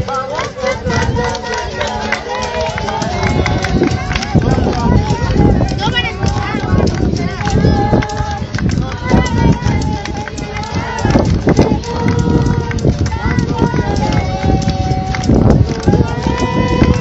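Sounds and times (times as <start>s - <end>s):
people calling out and exclaiming: 0.0s - 17.0s
heavy low rumble: 0.7s - 17.0s.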